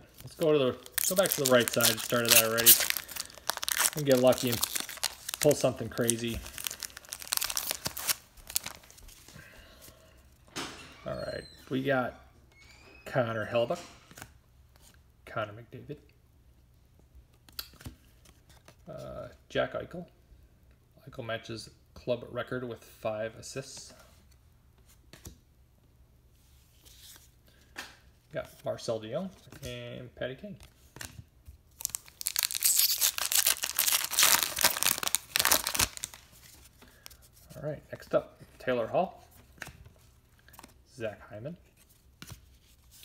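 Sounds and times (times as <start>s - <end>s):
wrapper tearing and crinkling: 0.2s - 9.0s, 31.8s - 36.6s
cards sliding and rustling: 1.1s - 9.3s.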